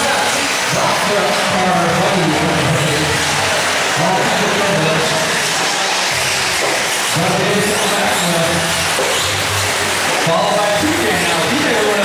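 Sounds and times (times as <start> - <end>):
model buggy engines revving: 0.0 - 12.0.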